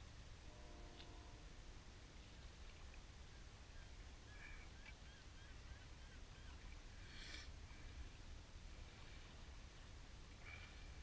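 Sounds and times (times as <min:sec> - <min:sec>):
faint birds calling: 0:02.2 - 0:08.2.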